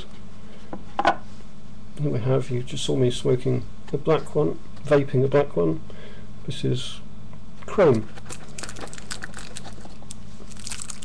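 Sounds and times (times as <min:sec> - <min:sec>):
steady low hum: 0:00.0 - 0:11.0
plastic wrapper crinkling: 0:08.1 - 0:11.0.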